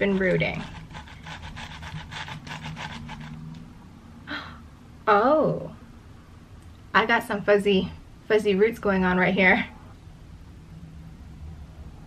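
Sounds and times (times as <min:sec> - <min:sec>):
gritty scratching in substrate: 0:00.0 - 0:03.4.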